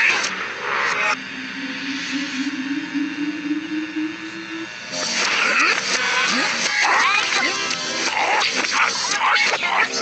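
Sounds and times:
low tone rising in pitch: 1.1 - 5.2.

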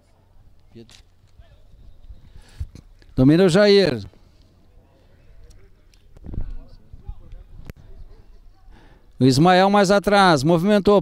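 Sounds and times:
distant players' voices: 0.2 - 9.2.

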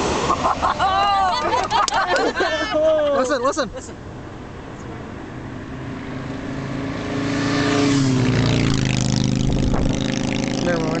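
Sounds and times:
airplane passing overhead: 4.6 - 11.0.

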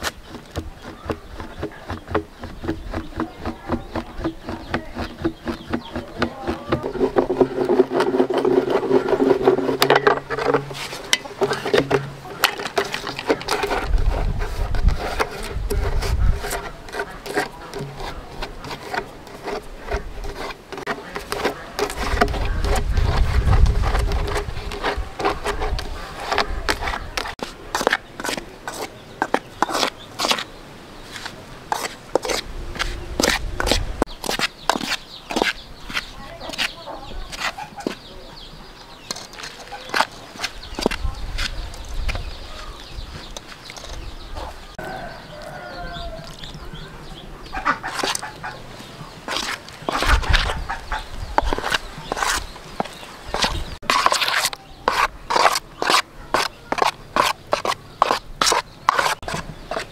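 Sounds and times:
knife scraping plastic pipe: 0.0 - 30.5, 31.1 - 38.0, 47.6 - 48.5, 49.2 - 59.9.

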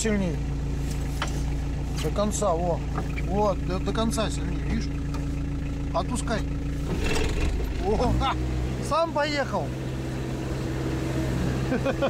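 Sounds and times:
vehicle engine running at low revs: 0.0 - 12.0.

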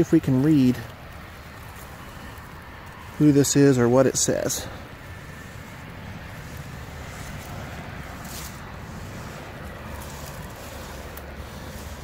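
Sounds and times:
wind on microphone: 1.2 - 12.0.

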